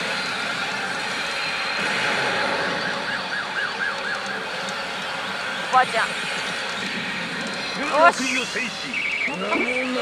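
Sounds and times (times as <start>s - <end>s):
warbling siren-like tone: 0.0s - 6.2s, 6.8s - 10.0s.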